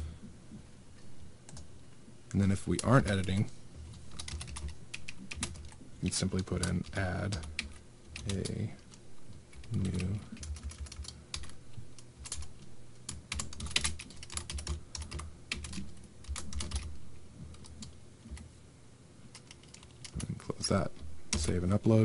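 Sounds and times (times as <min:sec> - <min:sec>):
computer keyboard typing: 0:02.5 - 0:18.5, 0:19.3 - 0:20.4.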